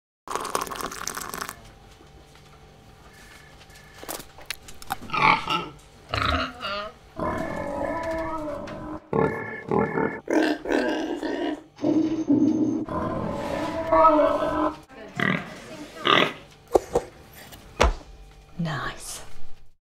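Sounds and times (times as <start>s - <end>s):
pig grunting and oinking: 5.1s - 16.4s.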